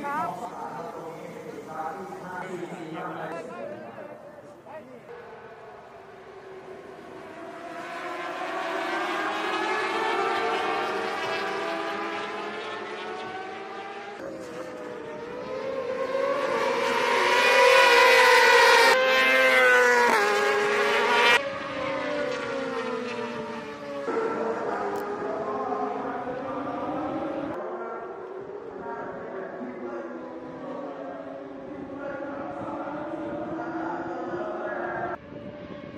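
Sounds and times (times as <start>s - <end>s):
racing motorcycles passing: 0.0s - 35.9s.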